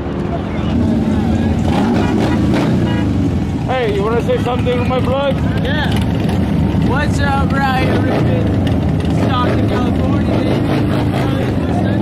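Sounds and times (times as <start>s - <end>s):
motorcycle engines rumbling: 0.0s - 12.0s.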